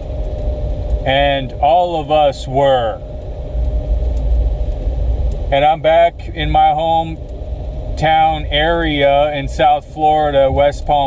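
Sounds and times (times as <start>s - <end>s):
faint steady hum: 0.0s - 11.0s
vehicle engine rumble: 0.0s - 11.0s.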